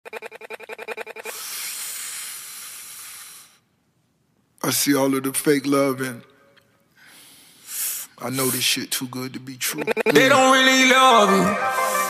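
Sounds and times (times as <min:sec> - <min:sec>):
stuttering pitched sound: 0:00.0 - 0:01.4, 0:09.6 - 0:11.2
steady hiss: 0:01.3 - 0:03.9, 0:07.0 - 0:09.0.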